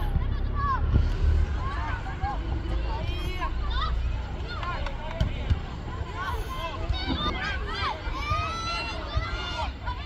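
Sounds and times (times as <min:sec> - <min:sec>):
low outdoor rumble: 0:00.0 - 0:10.0
players calling and shouting: 0:00.0 - 0:10.0.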